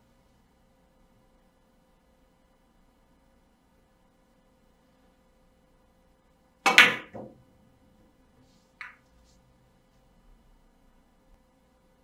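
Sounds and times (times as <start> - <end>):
billiard balls clacking: 6.7 - 7.4.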